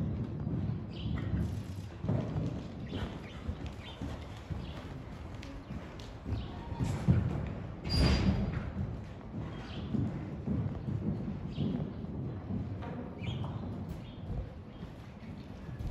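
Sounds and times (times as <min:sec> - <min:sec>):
horse hoofbeats on sand: 0:00.0 - 0:15.9.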